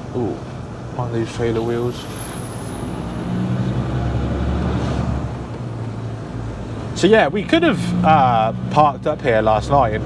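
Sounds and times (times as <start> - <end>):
truck engine and road noise: 0.0 - 10.0.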